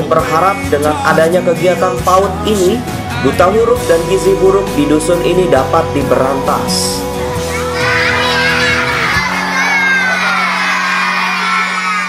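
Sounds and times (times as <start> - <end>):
soft background music: 0.0 - 11.0
children shouting together: 7.4 - 12.0.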